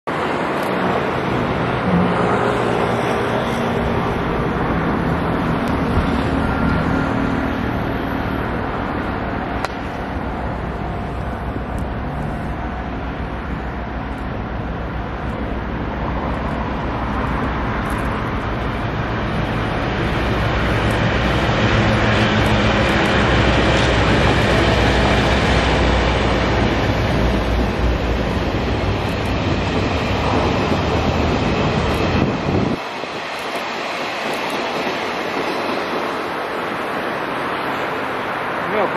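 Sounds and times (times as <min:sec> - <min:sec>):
diesel locomotive engine drone: 0:00.1 - 0:38.9
train wagons rumbling by: 0:00.1 - 0:38.9.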